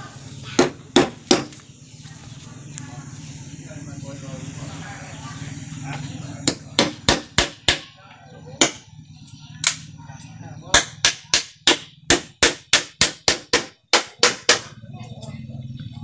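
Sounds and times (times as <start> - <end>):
hammer striking bamboo poles: 0.6 - 1.6, 6.4 - 8.0, 8.6 - 8.8, 10.7 - 14.8.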